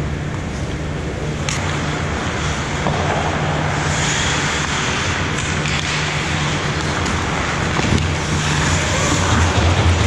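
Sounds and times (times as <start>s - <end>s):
indoor rink hum and rushing: 0.0s - 10.0s
skates scraping on ice: 1.5s - 10.0s.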